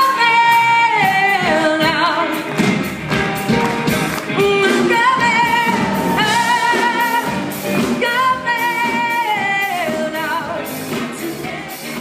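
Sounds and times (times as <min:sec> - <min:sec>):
woman singing with vibrato: 0:00.0 - 0:02.5, 0:04.3 - 0:12.0
band accompaniment: 0:00.0 - 0:12.0.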